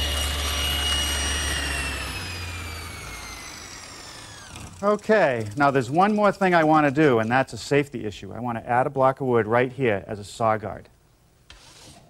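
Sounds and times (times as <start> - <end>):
table saw whine winding down: 0.0 - 6.0.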